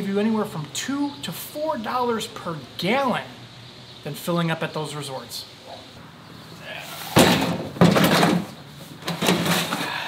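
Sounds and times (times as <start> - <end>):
plastic cooler scraping on truck bed: 7.0 - 9.9.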